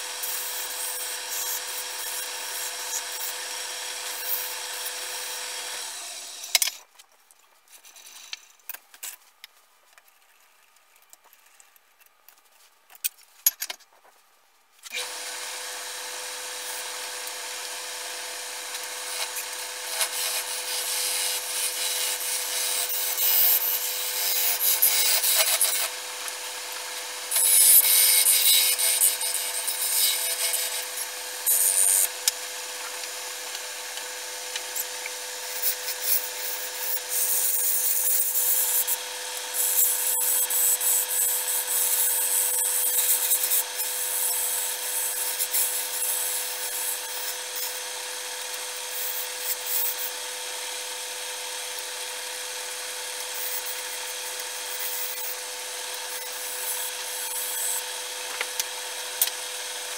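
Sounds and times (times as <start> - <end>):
wood lathe humming: 0.0 - 6.4, 15.0 - 59.9
gouge scraping spinning wood: 17.8 - 50.2.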